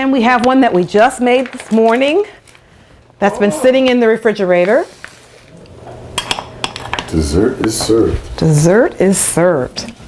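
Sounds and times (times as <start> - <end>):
dishes and cutlery clinking: 5.9 - 8.0.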